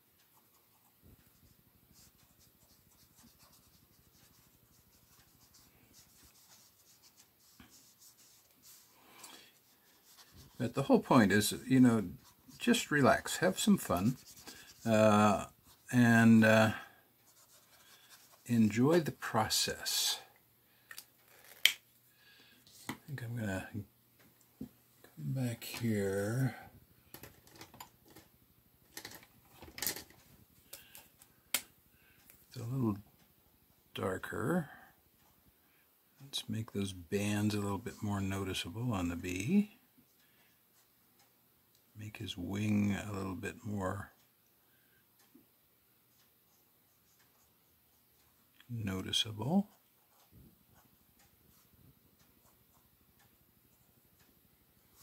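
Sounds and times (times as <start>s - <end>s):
marker scratching on paper: 2.0s - 8.9s, 9.6s - 10.6s, 13.7s - 14.9s, 17.3s - 18.5s.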